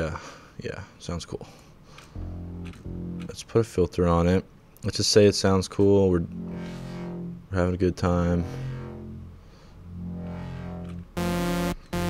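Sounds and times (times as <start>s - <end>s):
low sustained synthesizer tone: 2.2s - 4.4s, 6.0s - 12.0s.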